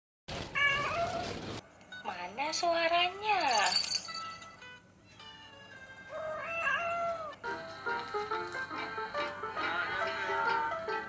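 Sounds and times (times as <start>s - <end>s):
cat meowing: 0.6s - 1.4s, 5.5s - 7.4s.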